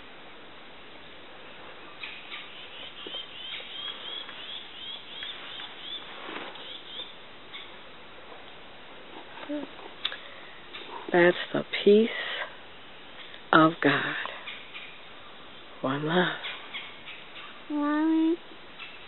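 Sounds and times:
faint outdoor hiss: 0.0s - 19.0s
bird chirping: 1.9s - 7.8s, 14.4s - 17.7s, 18.7s - 19.0s.

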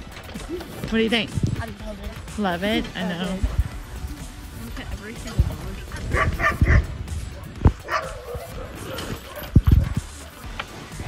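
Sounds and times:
low thumps: 0.0s - 10.7s
huskies barking and yipping: 1.8s - 11.0s.

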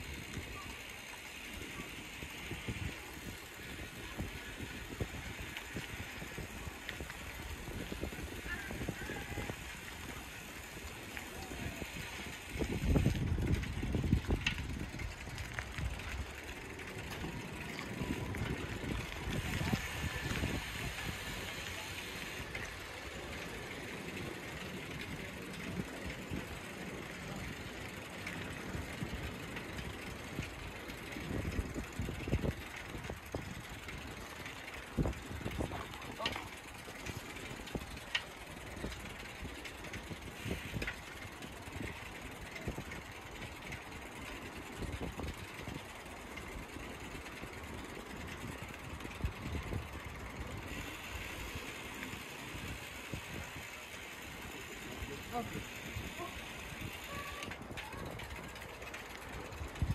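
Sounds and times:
bicycle rolling noise: 0.0s - 59.9s
people talking nearby: 0.1s - 47.1s, 49.6s - 59.9s
wind buffeting microphone: 1.7s - 59.9s.

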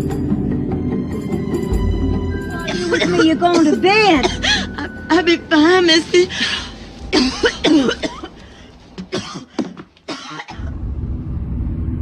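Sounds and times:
quiet background music: 0.0s - 10.4s
woman coughing: 2.7s - 5.0s, 7.1s - 8.4s, 9.0s - 10.7s.

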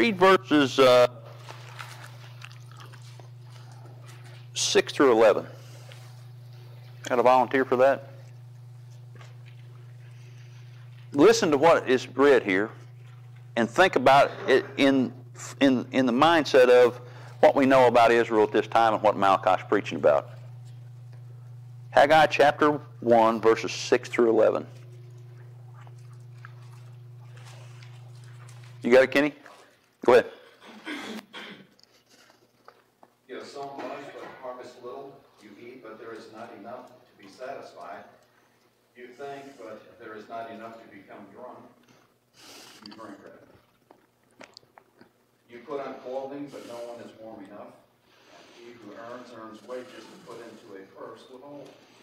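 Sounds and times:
low electrical hum: 0.0s - 52.0s.

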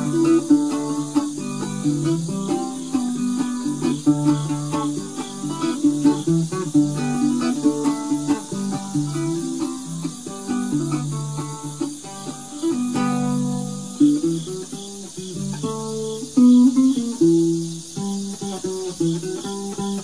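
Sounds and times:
crickets chirring: 0.0s - 20.0s
ukulele melody: 0.0s - 20.0s.

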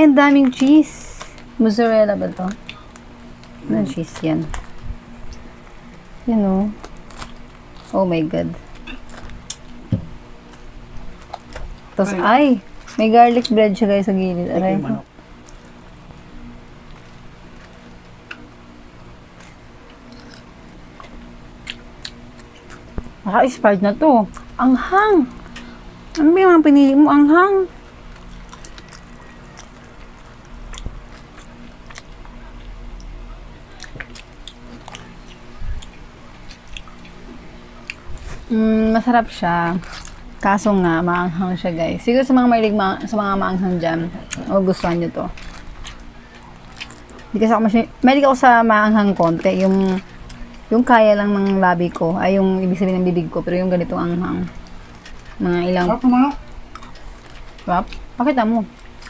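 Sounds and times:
plastic wrapper crinkling: 0.3s - 8.0s, 10.4s - 13.6s, 27.5s - 32.8s, 39.2s - 41.1s, 44.2s - 47.4s, 54.4s - 59.0s
person speaking: 3.6s - 4.5s, 12.0s - 15.1s, 55.4s - 56.4s
close-up chewing mouth noises: 19.3s - 23.2s, 27.7s - 38.5s, 39.8s - 40.4s, 44.2s - 47.3s, 56.3s - 59.0s.

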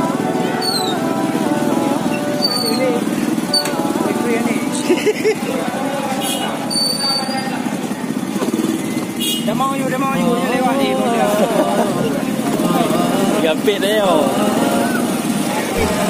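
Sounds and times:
people's voices: 0.0s - 16.0s
scooter engine droning: 0.0s - 16.0s.

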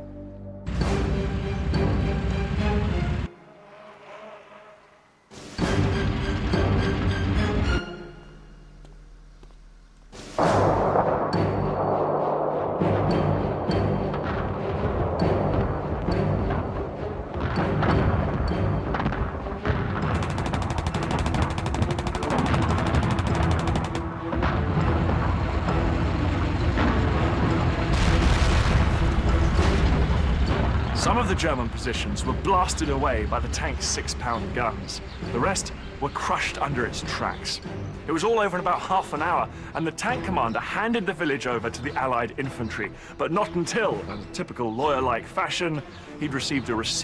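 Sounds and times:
background music: 0.0s - 4.3s, 5.0s - 47.0s
booms: 10.2s - 31.6s
gunfire: 17.4s - 25.2s.

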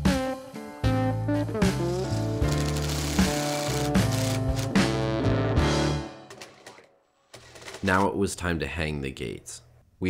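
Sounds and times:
background music with guitar: 0.0s - 6.2s.

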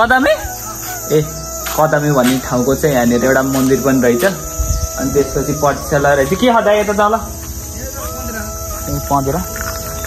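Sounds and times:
man talking: 0.0s - 9.6s
insects buzzing: 0.0s - 10.0s.

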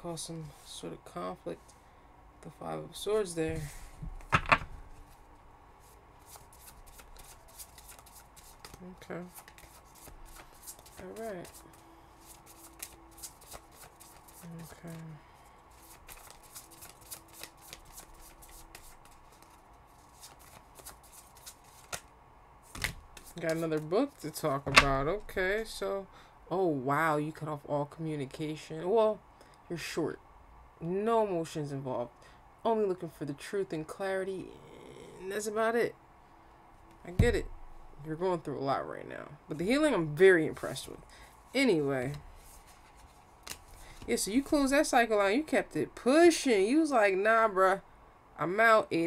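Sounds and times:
cards being shuffled: 5.8s - 15.1s, 15.7s - 25.7s, 42.0s - 45.0s.

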